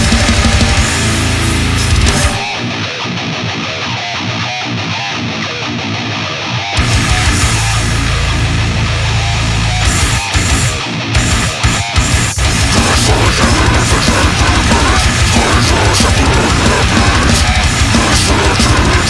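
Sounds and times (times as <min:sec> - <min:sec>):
death metal band: 0:00.0 - 0:19.0.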